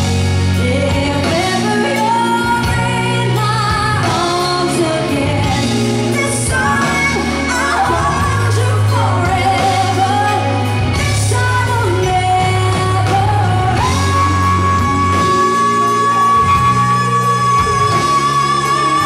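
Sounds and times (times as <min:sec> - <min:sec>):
band with electric guitar: 0:00.0 - 0:19.0
woman singing into microphone: 0:00.0 - 0:19.0.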